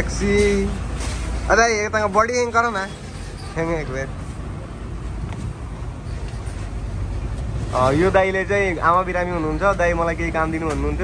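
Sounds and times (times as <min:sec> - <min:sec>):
vehicle engine and road rumble: 0:00.0 - 0:11.0.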